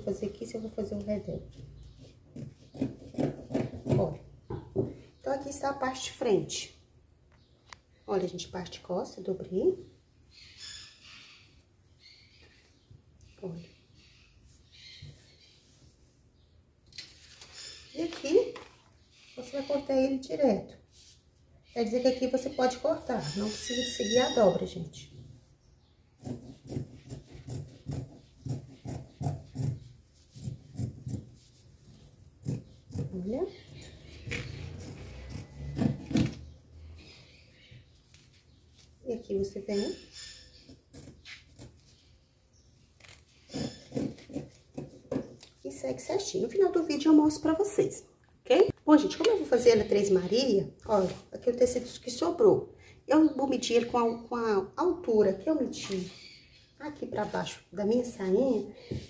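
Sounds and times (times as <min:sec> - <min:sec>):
fabric and paper rustling: 0:17.0 - 0:19.0, 0:50.9 - 0:51.4, 0:55.7 - 0:56.2.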